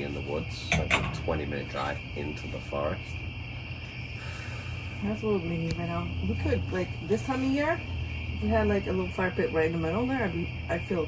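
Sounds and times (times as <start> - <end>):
crickets chirping: 0.0 - 11.0
low steady hum: 0.0 - 11.0.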